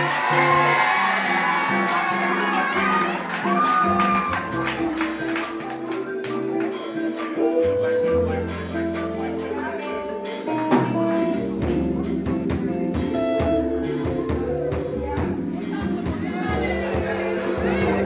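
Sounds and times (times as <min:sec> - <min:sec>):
band playing slow r and b: 0:00.0 - 0:18.0
drums keeping time: 0:00.0 - 0:18.0.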